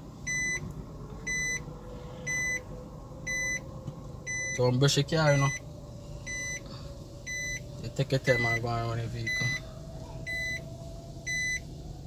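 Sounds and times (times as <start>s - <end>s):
low hum of running car: 0.0s - 12.0s
short high reverse beeps: 0.3s - 0.6s, 2.3s - 2.6s, 6.3s - 6.6s, 7.3s - 7.6s, 10.3s - 10.6s, 11.3s - 11.6s.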